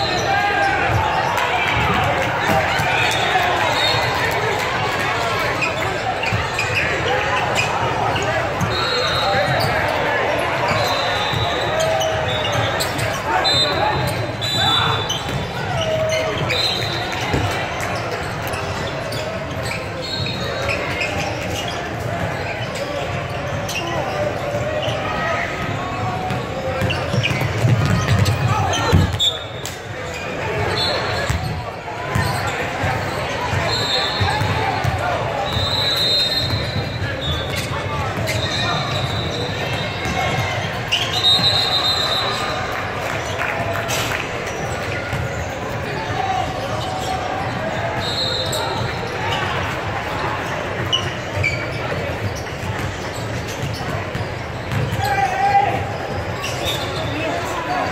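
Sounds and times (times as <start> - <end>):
echoing chatter of people: 0.0 - 57.9.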